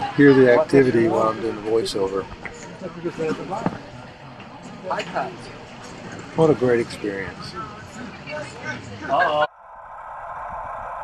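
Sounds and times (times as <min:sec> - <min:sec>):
chatter of voices: 0:00.0 - 0:09.5.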